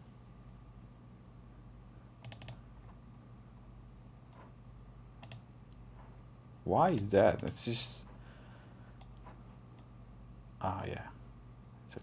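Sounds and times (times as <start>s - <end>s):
low steady hum: 0.0s - 12.0s
computer keyboard clicking: 2.2s - 2.6s, 5.2s - 5.4s, 6.9s - 7.6s.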